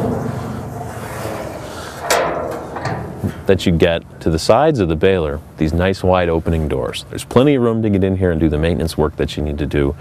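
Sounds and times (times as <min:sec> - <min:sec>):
metal door swinging open rumble: 0:00.0 - 0:04.5.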